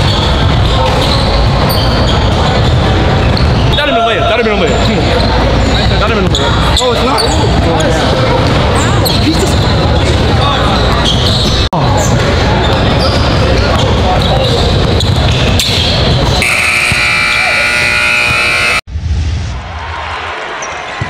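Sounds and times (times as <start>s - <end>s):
voices echoing in a large hall: 0.0s - 18.8s.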